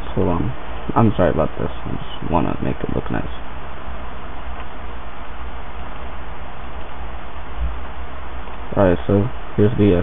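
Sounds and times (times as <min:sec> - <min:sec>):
low hum: 0:00.0 - 0:10.0
microphone hiss: 0:00.0 - 0:10.0.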